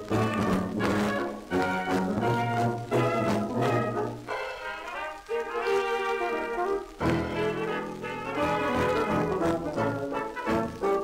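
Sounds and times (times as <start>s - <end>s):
old recording of dance orchestra: 0.0s - 11.0s.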